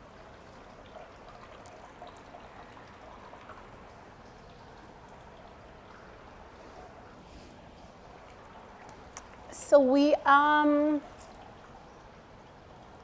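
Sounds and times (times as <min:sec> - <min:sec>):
water trickling in a fountain: 0:00.0 - 0:13.0.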